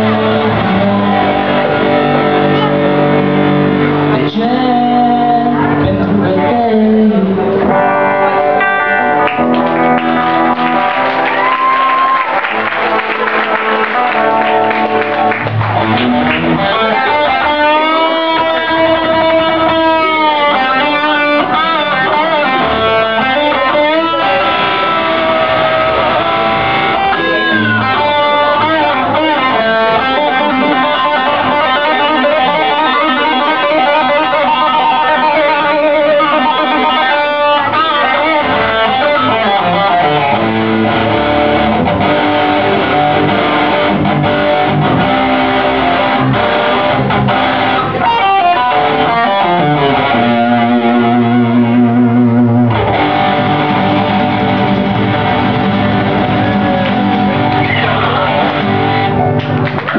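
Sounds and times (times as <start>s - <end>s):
distorted electric guitar solo: 0.0s - 59.9s
rock band accompaniment: 0.0s - 59.9s.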